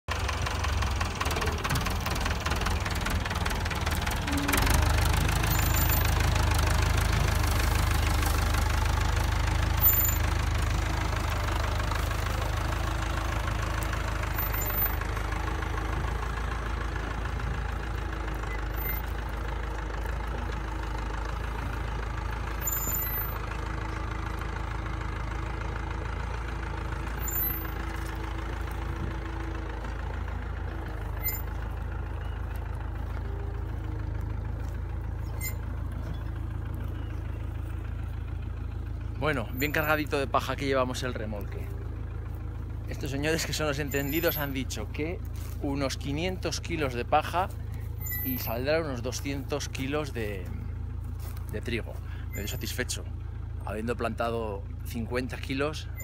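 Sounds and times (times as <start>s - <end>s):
tractor engine running: 0.0s - 56.0s.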